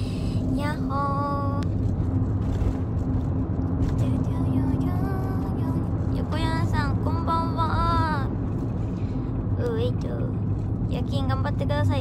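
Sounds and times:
car engine and road rumble: 0.0 - 12.0
young woman speaking: 9.6 - 12.0.

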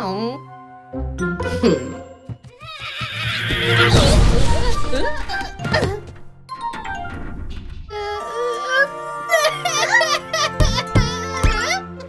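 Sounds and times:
cartoon background music: 0.0 - 12.0
horse-like whinny: 2.7 - 4.0.

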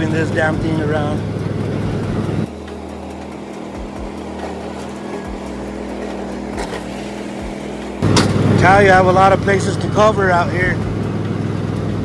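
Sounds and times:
riding mower engine running: 0.0 - 12.0.

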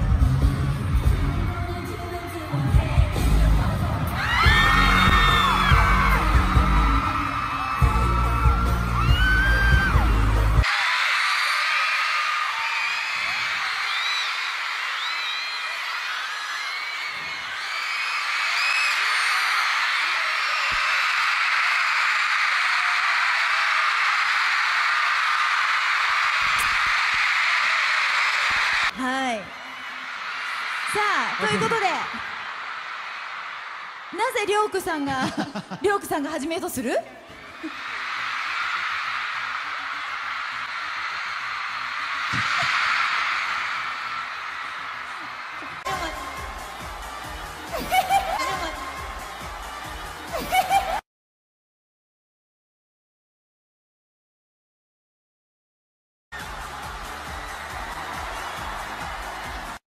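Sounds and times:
pop music with heavy bass beat: 0.0 - 10.6, 45.9 - 51.0, 56.4 - 59.8
crowd screaming and cheering: 0.0 - 36.0, 37.0 - 51.0, 56.3 - 59.8.

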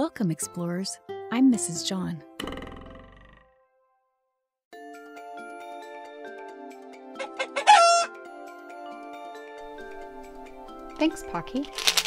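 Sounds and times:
light background music: 0.0 - 3.0, 4.7 - 12.0
rooster crowing: 7.2 - 8.2.

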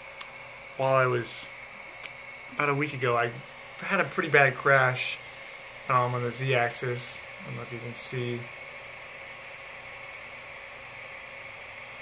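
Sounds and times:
faint high whine: 0.0 - 12.0
low hiss: 0.0 - 12.0.

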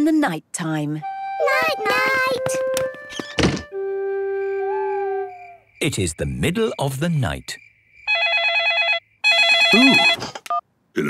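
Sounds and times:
mobile phone ringing: 8.1 - 10.6.

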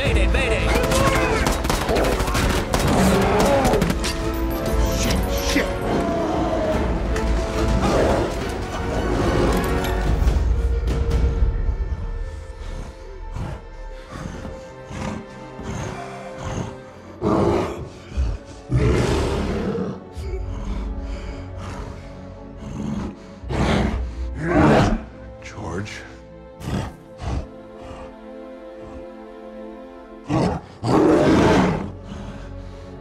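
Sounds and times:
orchestral music: 0.0 - 33.0
sustained film score chord: 0.0 - 33.0.

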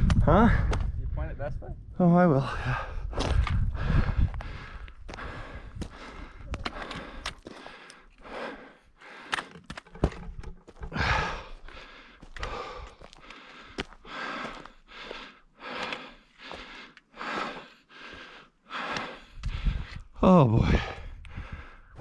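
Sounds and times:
heavy breathing: 2.4 - 22.0
footsteps crunching on loose rock: 9.4 - 15.2.

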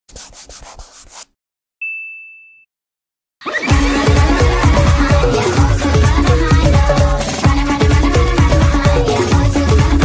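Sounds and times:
bright chime ringing: 1.8 - 2.7.

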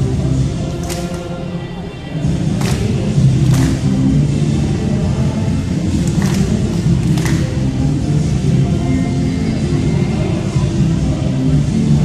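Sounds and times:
loud dance music: 0.0 - 12.0.

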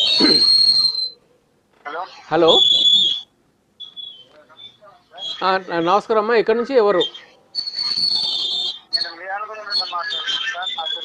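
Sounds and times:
high-pitched whistle: 0.0 - 1.2, 2.5 - 4.4, 7.0 - 11.0.

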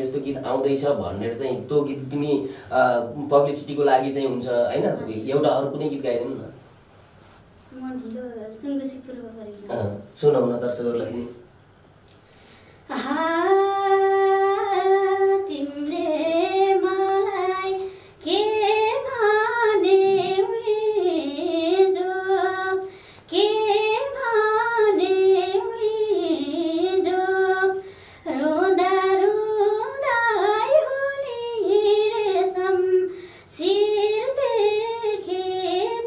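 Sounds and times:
woman singing unaccompanied: 12.9 - 36.0.

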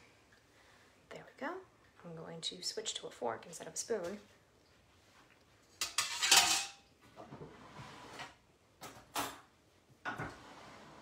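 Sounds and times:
metal cutlery clattering: 5.8 - 6.8.

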